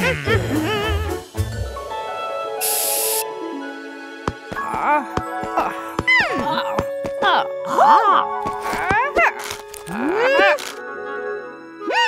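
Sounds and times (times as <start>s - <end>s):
aerosol spray can hiss: 2.6s - 3.2s.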